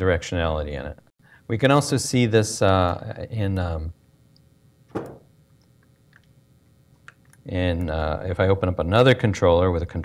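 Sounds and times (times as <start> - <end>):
knock: 4.9 - 5.2.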